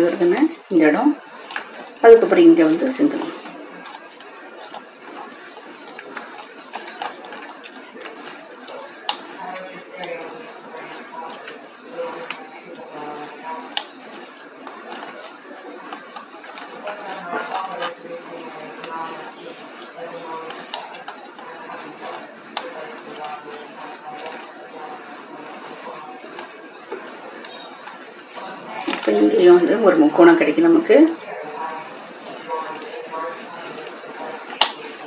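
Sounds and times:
faint background voices: 0:00.0 - 0:35.0.

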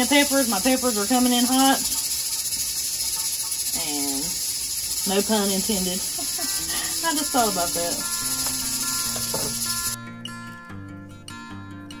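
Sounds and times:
insect chorus chirring: 0:00.0 - 0:10.0.

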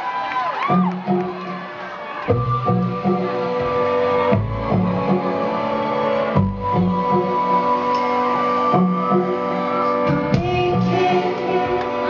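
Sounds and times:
live band playing chords: 0:00.6 - 0:12.0
low bass notes: 0:02.3 - 0:08.0.

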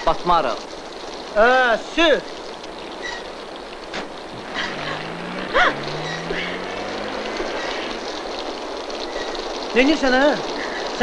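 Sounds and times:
steady rain: 0:00.0 - 0:11.0
vehicle engine driving off: 0:03.9 - 0:09.7.

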